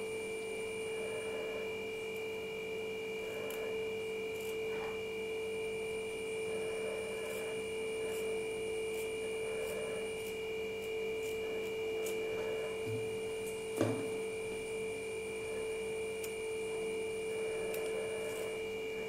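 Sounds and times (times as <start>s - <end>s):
humming tone with whine: 0.0s - 19.0s.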